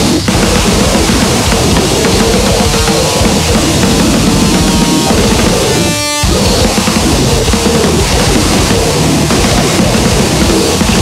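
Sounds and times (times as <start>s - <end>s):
wall of distorted noise: 0.0s - 11.0s.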